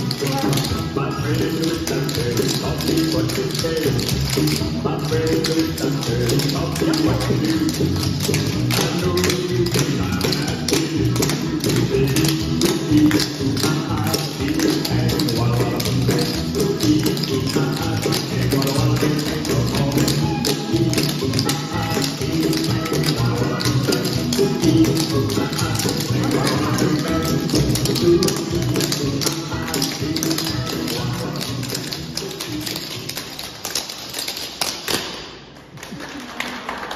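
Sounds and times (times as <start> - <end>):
recorded music: 0.0 - 35.6.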